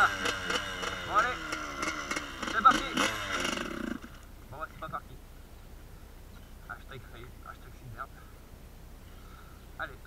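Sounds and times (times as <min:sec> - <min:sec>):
two-stroke engine firing briefly: 0:00.0 - 0:04.2.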